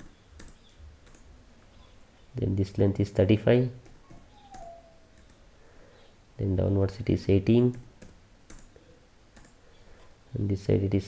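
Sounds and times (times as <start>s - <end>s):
computer mouse clicks: 0.0s - 1.3s, 3.8s - 5.4s, 7.7s - 8.8s, 9.4s - 9.6s.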